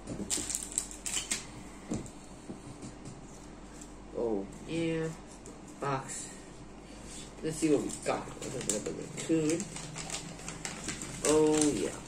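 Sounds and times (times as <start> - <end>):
plastic packaging rustling: 0.1 - 1.6, 7.6 - 12.0.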